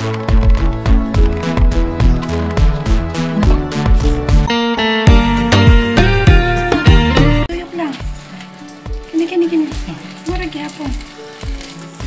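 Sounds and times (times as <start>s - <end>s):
background music with beat: 0.0s - 7.5s.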